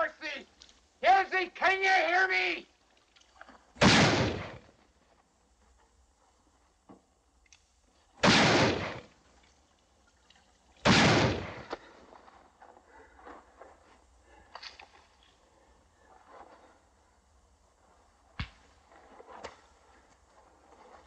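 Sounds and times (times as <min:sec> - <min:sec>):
gunshots with echoing tail: 0:03.8 - 0:04.7, 0:08.2 - 0:09.1, 0:10.8 - 0:11.7.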